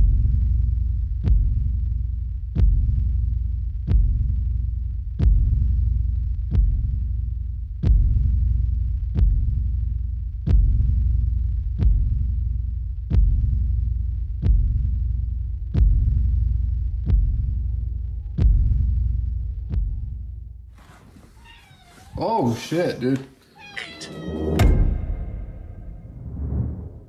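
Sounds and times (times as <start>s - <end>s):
low drone: 23.9s - 27.0s
deep booms with rumble: 24.3s - 27.0s.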